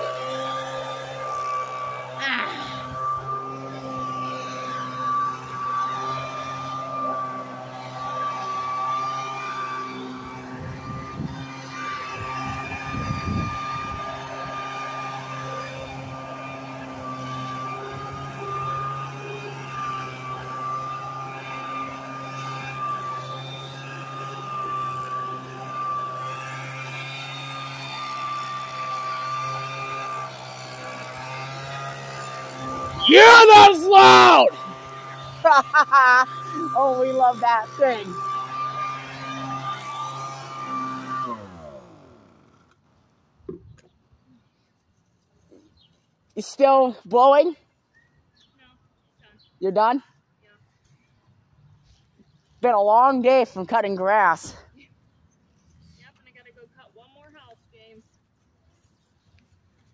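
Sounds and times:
leaf blower running: 0:00.0 - 0:43.5, 0:44.4 - 0:59.9.

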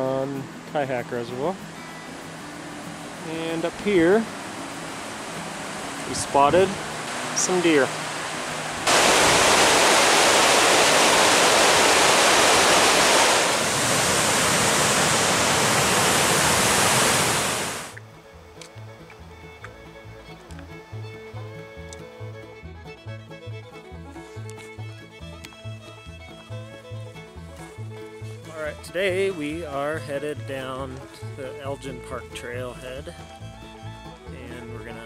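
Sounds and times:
water pouring down spillway: 0:05.0 - 0:18.0
music with plucked bass beat: 0:18.0 - 0:35.0.

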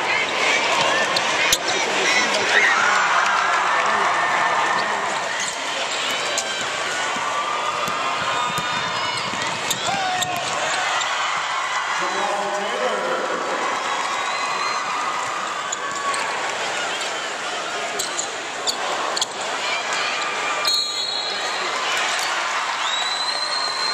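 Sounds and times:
players moving on court: 0:00.0 - 0:23.8
arena crowd noise: 0:00.0 - 0:23.9
basketball bouncing: 0:06.6 - 0:10.8.

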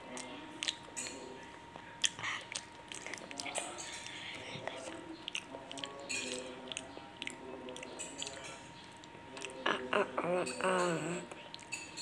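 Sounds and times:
child chewing crunchy snack: 0:00.0 - 0:12.0.

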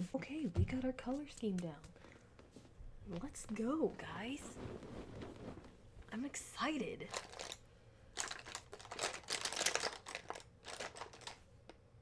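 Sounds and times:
cosmetics rummaged through by hand: 0:07.1 - 0:07.6, 0:08.2 - 0:11.4.

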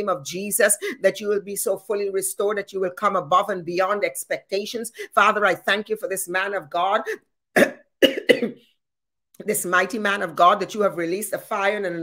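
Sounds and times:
woman coughing: 0:07.6 - 0:08.6.

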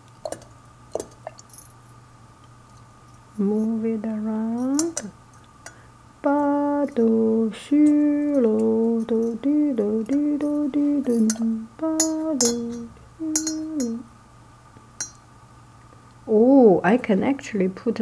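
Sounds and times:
woman humming a slow tune: 0:03.4 - 0:05.1, 0:06.2 - 0:14.1
faint metallic clinks in teapot: 0:11.1 - 0:14.0.

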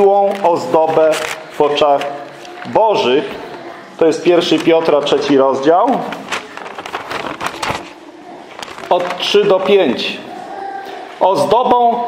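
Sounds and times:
thin pages being leafed through: 0:00.2 - 0:02.7, 0:06.0 - 0:09.8.

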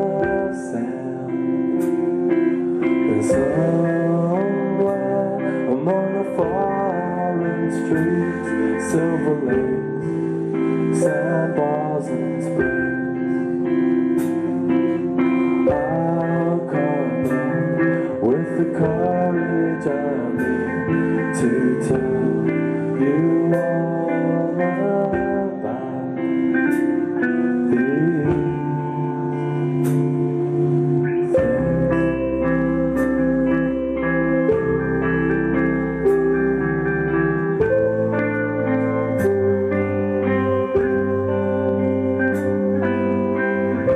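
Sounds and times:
electric guitars: 0:00.0 - 0:43.9
low bass: 0:00.0 - 0:43.9.

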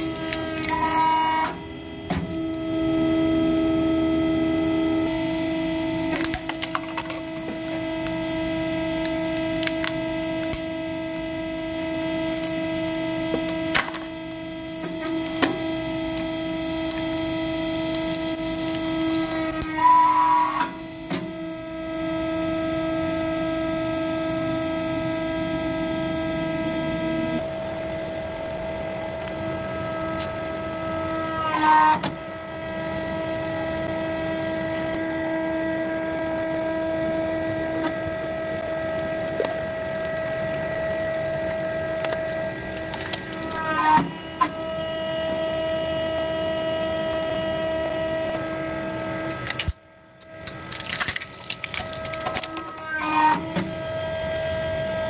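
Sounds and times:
objects cracking and creaking: 0:00.0 - 0:01.6, 0:06.1 - 0:20.8, 0:38.9 - 0:44.1, 0:49.3 - 0:54.6
hydraulic pump hum: 0:00.0 - 0:55.0.

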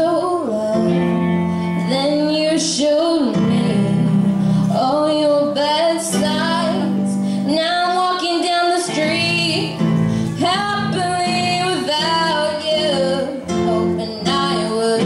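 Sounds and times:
electric bass guitar: 0:00.0 - 0:15.0
girl singing: 0:00.0 - 0:15.0
live band playing: 0:03.4 - 0:15.0.

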